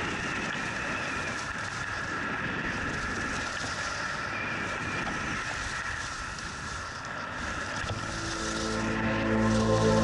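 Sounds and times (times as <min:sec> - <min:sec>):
music: 0:07.9 - 0:10.0.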